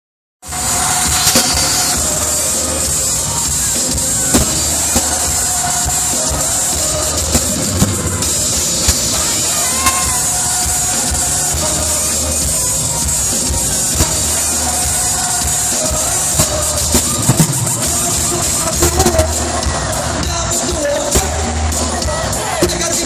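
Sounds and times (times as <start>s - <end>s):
crowd screaming: 0.4s - 23.0s
dance music over sound system: 0.4s - 23.0s.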